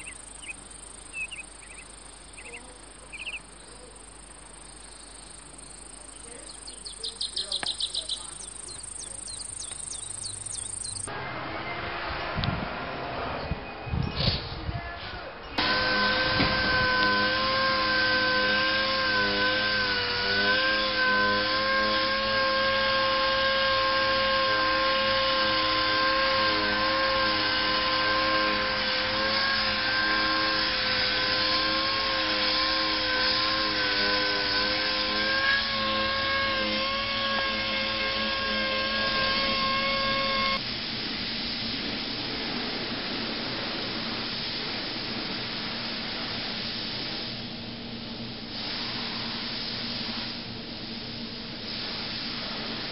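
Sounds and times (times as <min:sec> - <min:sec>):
motor-driven tool whining: 0:00.0 - 0:11.1, 0:15.6 - 0:40.6
steady hiss of air: 0:39.3 - 0:52.9.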